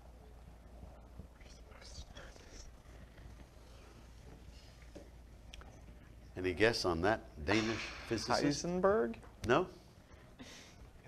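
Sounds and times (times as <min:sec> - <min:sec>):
faint whispering: 0:00.8 - 0:04.8.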